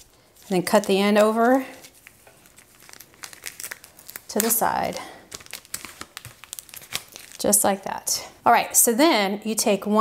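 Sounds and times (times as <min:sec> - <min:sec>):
plastic bag crinkling: 0:00.0 - 0:07.9.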